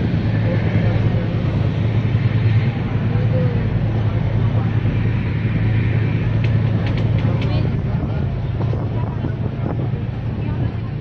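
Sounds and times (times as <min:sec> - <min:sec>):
faint passenger voices: 0:00.0 - 0:11.0
train coach rumble: 0:00.0 - 0:11.0.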